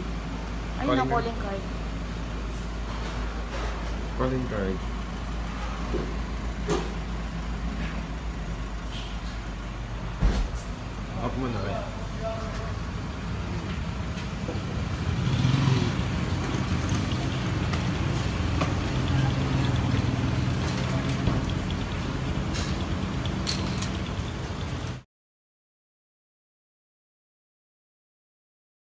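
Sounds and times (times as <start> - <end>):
vehicle engine idling: 0.0 - 25.0.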